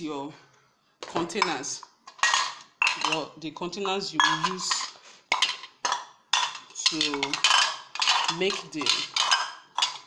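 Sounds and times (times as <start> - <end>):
aluminium cups clanking: 1.0 - 10.0.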